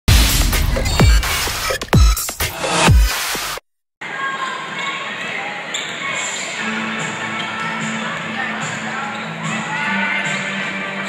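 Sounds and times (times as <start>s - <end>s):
murmur of crowd voices: 4.0s - 11.0s.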